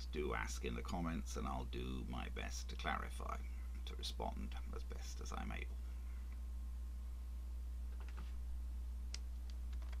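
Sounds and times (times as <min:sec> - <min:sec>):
low electrical hum: 0:00.0 - 0:10.0
keyboard and mouse clicks: 0:09.1 - 0:10.0.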